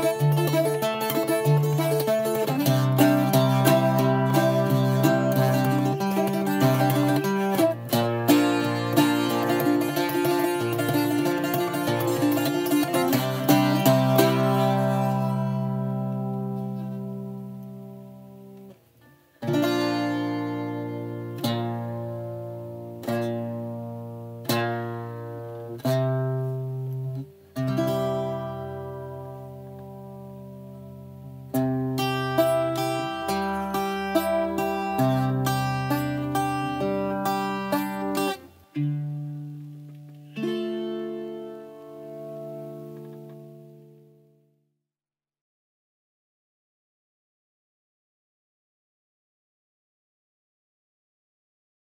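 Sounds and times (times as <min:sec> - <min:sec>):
bouzouki chords ringing: 0:00.0 - 0:44.4
bouzouki picking: 0:00.0 - 0:44.4.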